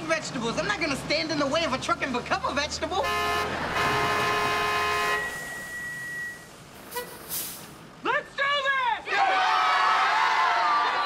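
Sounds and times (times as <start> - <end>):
truck engine running: 0.0 - 8.0
truck horn blaring: 3.0 - 7.2.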